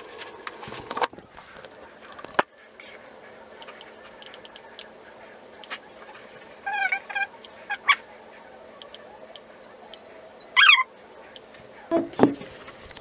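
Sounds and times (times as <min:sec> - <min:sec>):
pet animal high-pitched calls: 0:06.6 - 0:08.2, 0:10.4 - 0:10.9.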